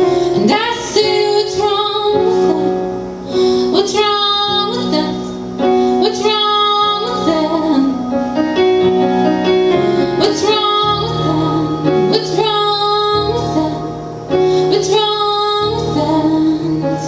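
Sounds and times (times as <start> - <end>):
woman singing: 0.0 - 8.2, 10.0 - 17.0
electric keyboard chords: 0.0 - 17.0.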